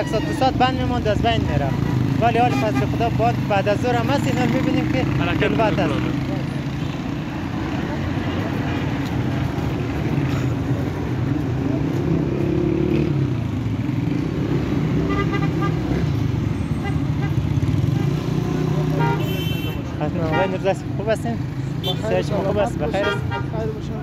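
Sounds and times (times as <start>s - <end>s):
traffic engines rumbling: 0.0s - 24.0s
car horn honking: 1.8s - 3.0s, 15.0s - 16.0s, 18.9s - 20.8s, 21.8s - 22.2s, 22.9s - 23.6s.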